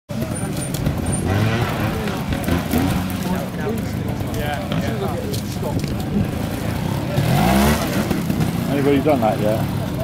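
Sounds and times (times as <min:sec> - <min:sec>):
motorcycle engine at low revs: 0:00.1 - 0:10.0
people talking: 0:00.1 - 0:10.0.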